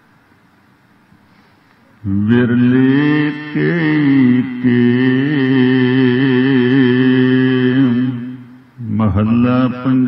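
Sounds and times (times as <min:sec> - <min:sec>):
man chanting verses: 0:02.0 - 0:10.0.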